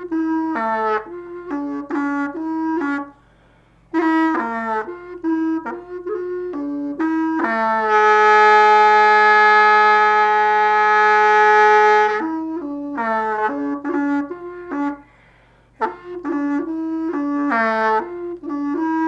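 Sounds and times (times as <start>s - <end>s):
solo wind instrument melody: 0.0s - 19.0s.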